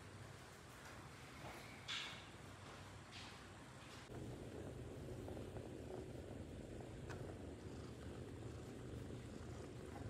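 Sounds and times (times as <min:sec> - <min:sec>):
kitten purring: 0:04.1 - 0:10.0.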